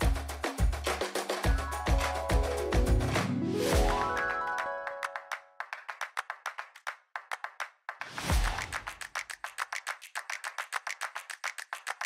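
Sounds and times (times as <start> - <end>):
fast wooden percussion clicks: 8.6 - 12.0.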